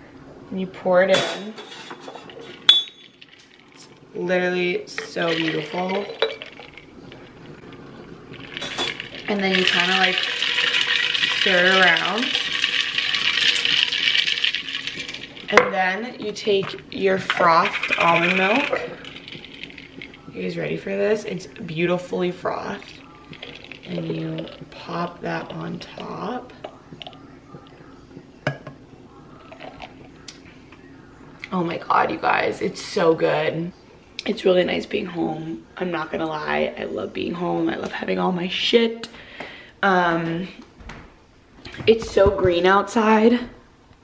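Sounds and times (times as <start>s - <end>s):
glassware clinks and taps: 1.8s - 3.1s.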